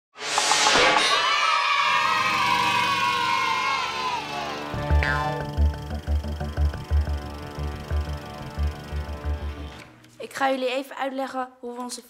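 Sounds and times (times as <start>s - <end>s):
children cheering over music: 0.7s - 6.3s
intro jingle: 4.7s - 9.9s.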